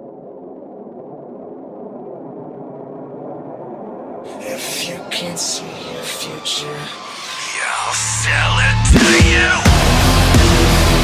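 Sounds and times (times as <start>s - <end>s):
droning synthesizer: 0.0s - 11.0s
metal band with vocals: 4.3s - 11.0s.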